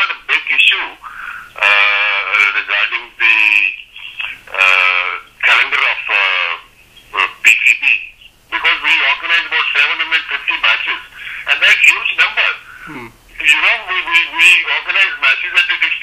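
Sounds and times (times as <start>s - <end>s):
voice over telephone line: 0.0s - 16.0s.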